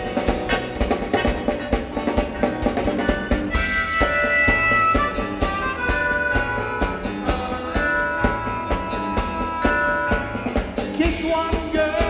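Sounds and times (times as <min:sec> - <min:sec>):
drum kit steady beat: 0:00.0 - 0:12.0
harmonica long notes: 0:02.8 - 0:11.0.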